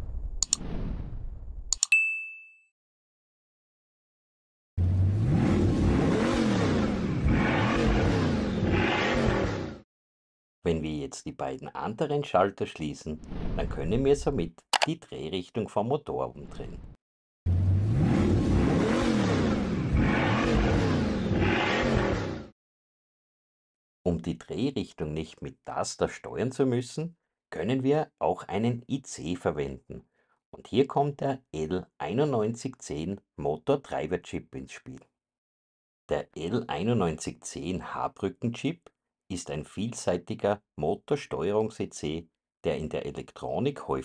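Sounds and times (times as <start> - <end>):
quick clicks: 0.4 - 0.6, 1.7 - 2.0
bright bell ding: 1.8 - 2.7.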